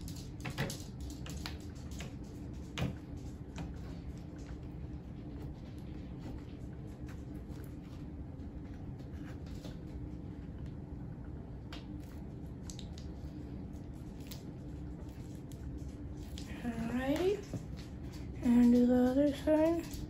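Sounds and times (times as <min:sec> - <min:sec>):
steady low hum: 0:00.0 - 0:20.0
person's voice: 0:16.4 - 0:17.6, 0:18.4 - 0:20.0.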